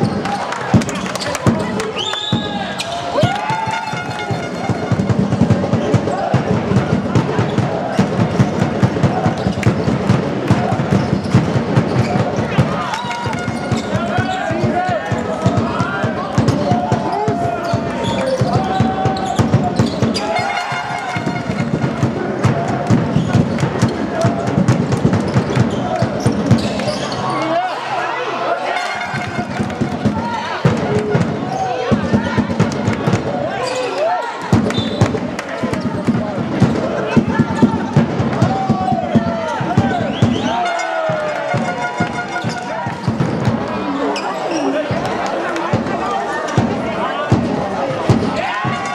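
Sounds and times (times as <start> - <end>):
basketball bouncing on wooden court: 2.5 - 24.0, 34.5 - 40.0
people calling out: 12.0 - 23.3, 33.4 - 48.9.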